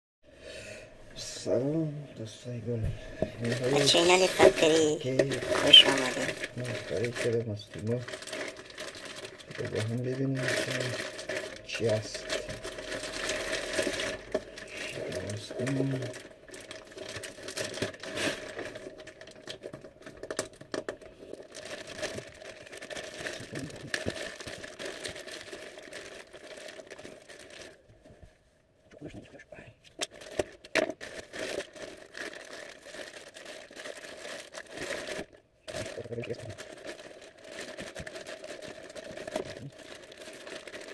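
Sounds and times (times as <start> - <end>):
plastic bag crinkling: 2.7 - 28.3, 29.9 - 40.9
plastic bag tearing: 3.0 - 27.9, 30.0 - 40.9.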